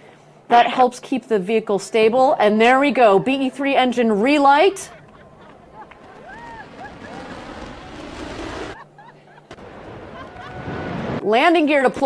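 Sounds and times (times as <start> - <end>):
distant rocket engine rushing: 5.0 - 8.8.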